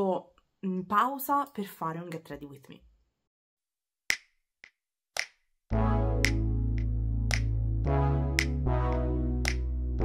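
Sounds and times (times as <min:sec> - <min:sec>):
music with deep bass: 0:05.7 - 0:10.0
finger snaps: 0:06.2 - 0:07.6, 0:08.4 - 0:09.7.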